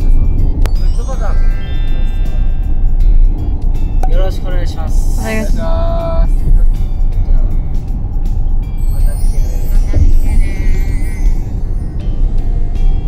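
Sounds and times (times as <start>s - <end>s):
car cabin road and engine rumble: 0.0s - 13.0s
voices: 4.0s - 7.7s.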